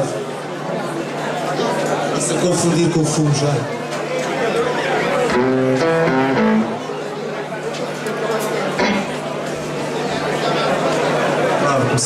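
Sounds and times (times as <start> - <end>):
electric guitar notes: 5.2 - 7.1, 8.8 - 9.2.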